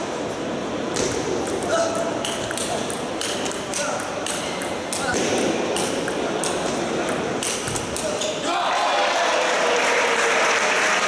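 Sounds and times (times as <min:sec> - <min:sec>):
table tennis ball clicking: 0:01.4 - 0:08.1.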